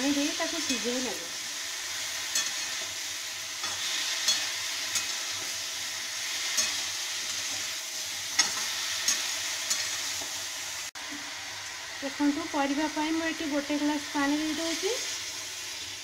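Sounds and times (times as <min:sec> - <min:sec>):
vegetables sizzling in oil: 0:00.0 - 0:16.0
metal spatula scraping a pan: 0:03.6 - 0:05.6, 0:06.3 - 0:10.2.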